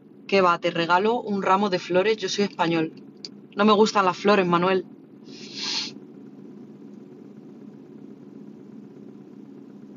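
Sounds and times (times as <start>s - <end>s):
low hum inside car: 0.0s - 9.9s
breathy exhale: 5.3s - 6.0s.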